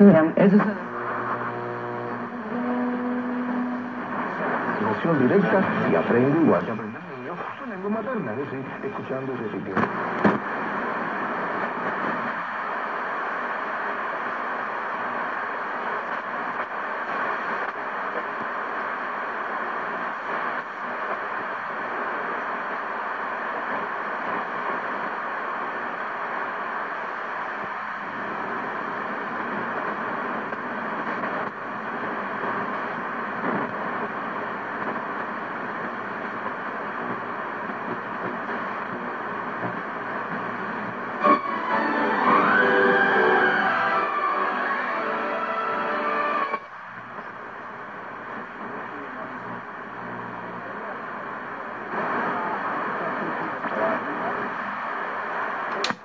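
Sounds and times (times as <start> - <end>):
radio static and hiss: 0.0 - 56.0.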